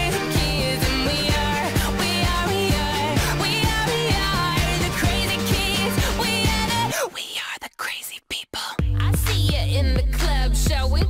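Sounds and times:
music with heavy bass: 0.0 - 6.9, 8.8 - 11.0
person whispering: 6.9 - 8.8.

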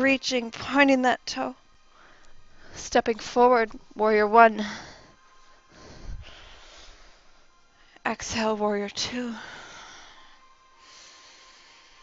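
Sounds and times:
faint background music: 0.0 - 12.0
person breathing: 1.9 - 2.9, 4.6 - 8.0, 9.3 - 12.0.

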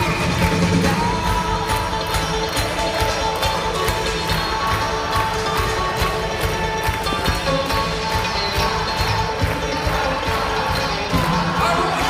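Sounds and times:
live rock band playing: 0.0 - 12.0
steady drum beat: 0.0 - 12.0.

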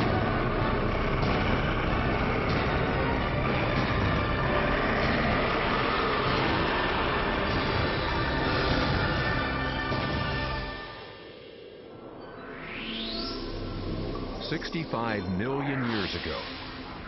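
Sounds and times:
loud dense rushing noise: 0.0 - 12.0
faint music: 0.0 - 17.0.

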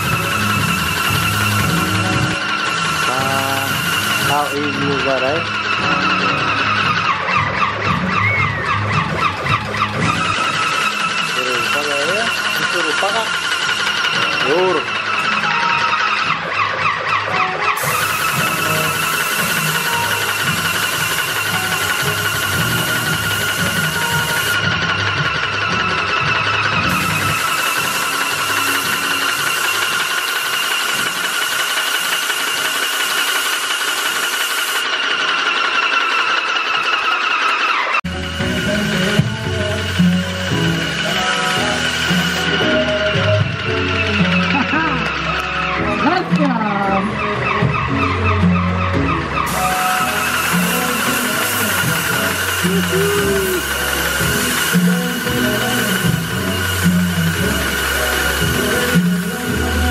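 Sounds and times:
background music: 0.0 - 31.1, 38.1 - 59.9
paint sprayer hissing: 0.0 - 46.5, 49.4 - 59.9
steady high whine: 38.0 - 59.9.

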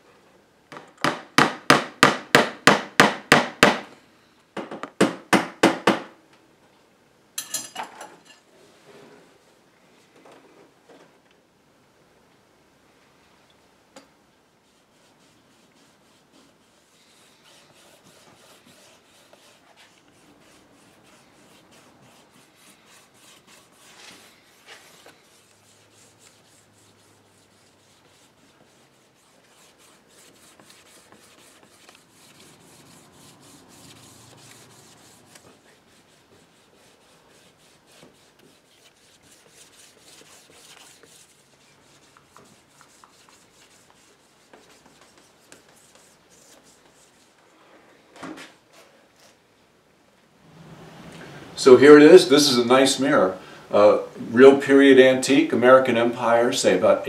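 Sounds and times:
cloth pad rubbing wood: 14.6 - 47.3.

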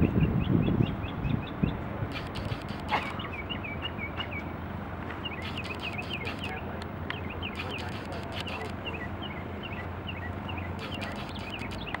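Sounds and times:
bird chirping: 0.0 - 4.5, 5.2 - 12.0
light sharp clicks: 2.1 - 3.1, 5.0 - 8.8, 10.8 - 12.0.

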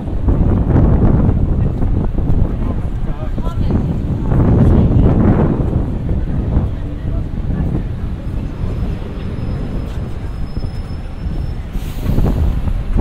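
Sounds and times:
city street traffic rumble: 0.0 - 13.0
bus driving past: 5.2 - 13.0.

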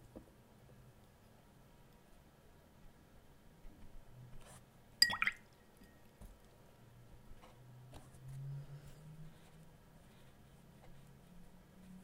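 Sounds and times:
brush strokes on paper: 7.4 - 12.0.

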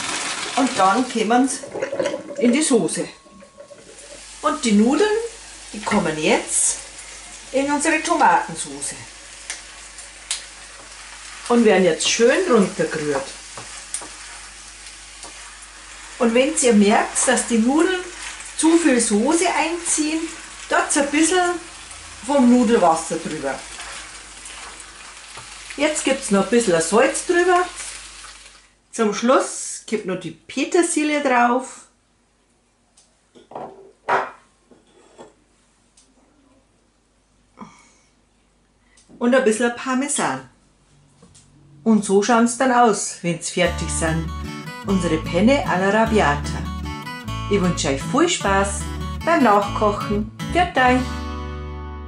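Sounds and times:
sauce sizzling in a frying pan: 3.3 - 28.7, 43.7 - 49.9.

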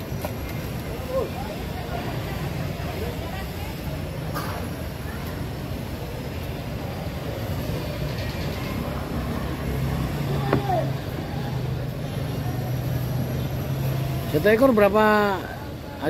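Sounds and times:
faint voices: 0.0 - 16.0
open-air market background noise: 0.0 - 16.0.

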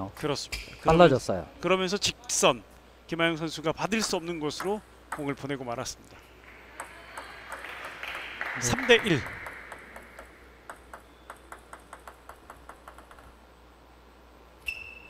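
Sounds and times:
table tennis ball bouncing: 4.0 - 5.4, 6.5 - 13.4.

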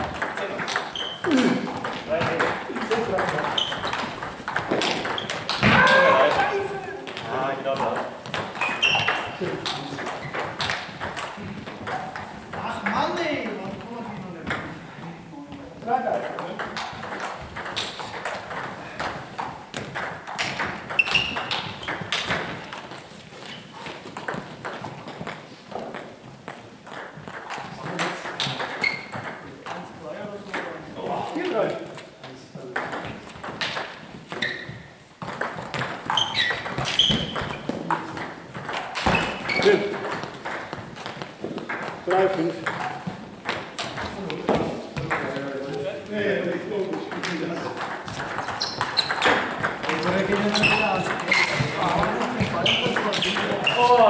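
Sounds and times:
table tennis balls clicking: 0.0 - 15.0, 15.9 - 31.0, 31.6 - 54.0
players' voices: 0.0 - 19.4, 43.8 - 54.0.

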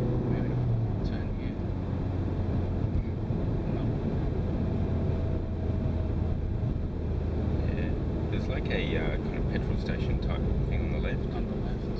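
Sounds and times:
car engine and tyre drone: 0.0 - 11.9.

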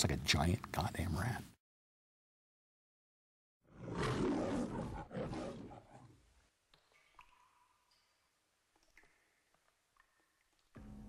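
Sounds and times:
lion roaring: 3.7 - 6.2.

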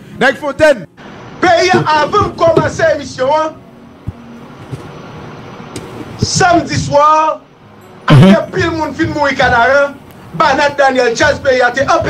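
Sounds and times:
passing vehicles hiss: 0.0 - 11.2.

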